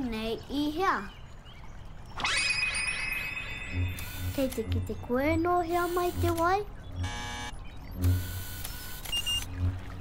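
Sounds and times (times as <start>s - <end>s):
buzzy electronic tone: 6.9s - 9.8s.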